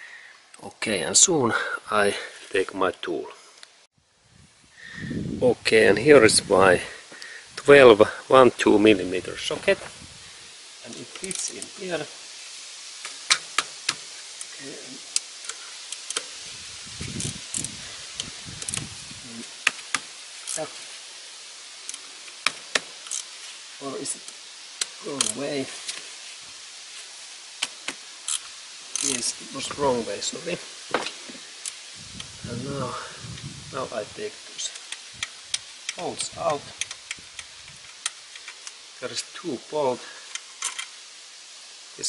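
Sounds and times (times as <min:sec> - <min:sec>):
steady low hiss: 0:00.0 - 0:42.0
steel bolts clicking together: 0:15.1 - 0:16.3, 0:21.8 - 0:23.4, 0:27.6 - 0:29.3, 0:34.7 - 0:38.8, 0:40.3 - 0:41.0.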